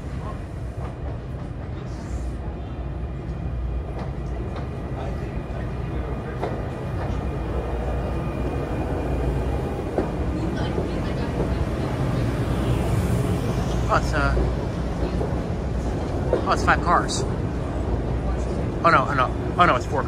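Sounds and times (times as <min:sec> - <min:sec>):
train rumbling past: 0:00.0 - 0:20.0.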